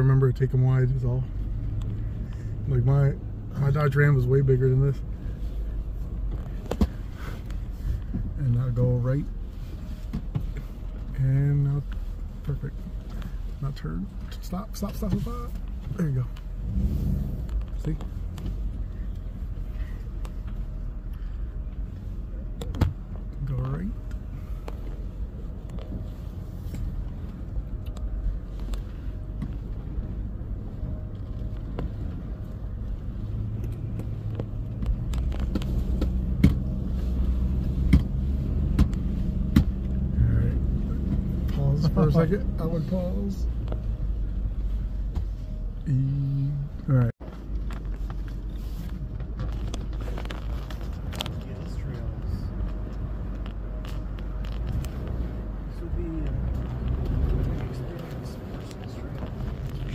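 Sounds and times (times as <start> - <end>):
engine and drivetrain rumble: 0.0 - 59.9.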